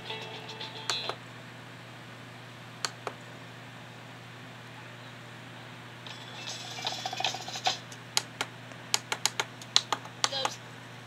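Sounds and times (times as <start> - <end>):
children's music from small speaker: 0.0 - 1.2
sharp clicks: 7.9 - 10.6.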